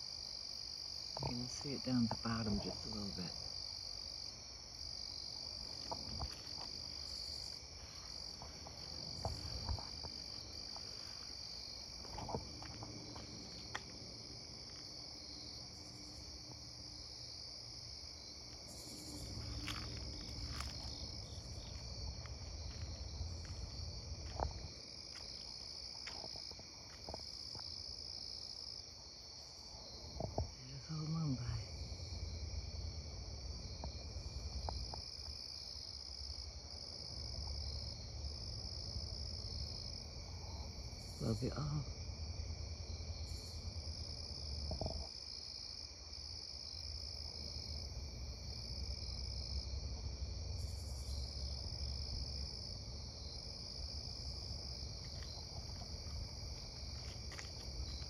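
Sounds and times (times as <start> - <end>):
night insects chorus: 0.0 - 58.0
faint low rumble: 5.4 - 17.1.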